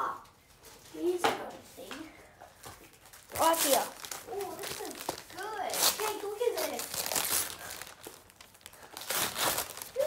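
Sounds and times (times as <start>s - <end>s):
wrapping paper tearing and rustling: 2.9s - 10.0s.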